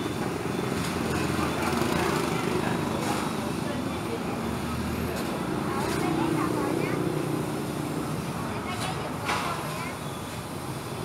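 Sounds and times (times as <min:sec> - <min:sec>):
murmur of voices: 0:00.0 - 0:10.8
motorbike and car engines passing: 0:00.4 - 0:09.1.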